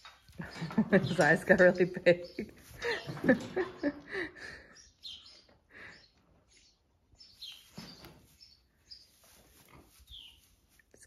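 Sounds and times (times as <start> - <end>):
calf nursing: 7.5 - 11.0.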